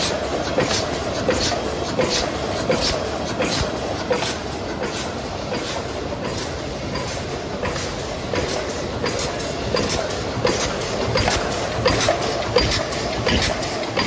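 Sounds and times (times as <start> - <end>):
machine clacking: 0.0 - 14.0
machine whirring: 0.0 - 14.0.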